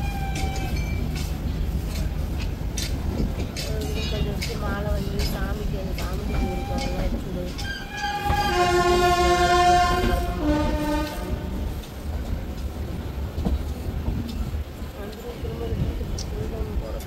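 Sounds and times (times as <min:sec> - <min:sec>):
train rumble and rail clatter: 0:00.0 - 0:17.0
train horn: 0:07.6 - 0:11.8.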